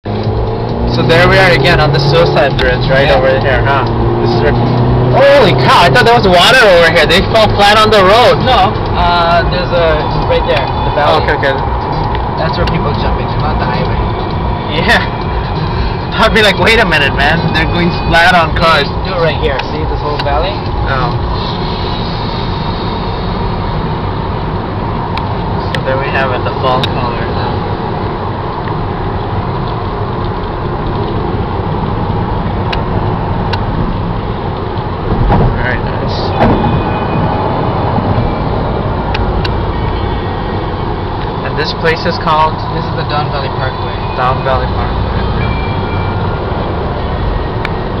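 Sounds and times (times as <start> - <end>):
car cabin road noise: 0.0 - 48.0.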